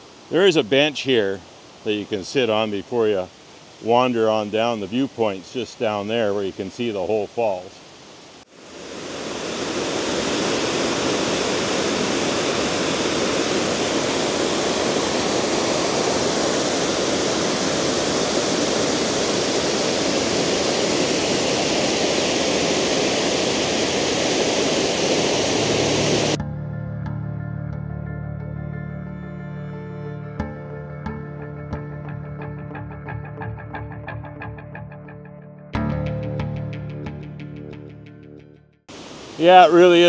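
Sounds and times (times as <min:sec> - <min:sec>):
waterfall rushing: 0:07.8 - 0:26.4, 0:38.9 - 0:40.0
soft music: 0:25.6 - 0:38.8.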